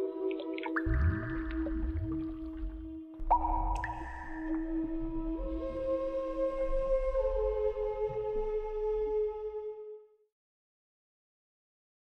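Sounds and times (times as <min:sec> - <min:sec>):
low electronic drone: 0:00.8 - 0:09.7
low rumble: 0:00.8 - 0:09.7.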